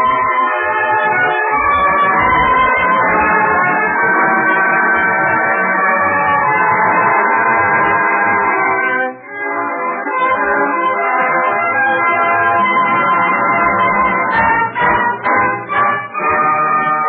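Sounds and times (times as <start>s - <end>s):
orchestra playing over old radio: 0.0s - 17.0s.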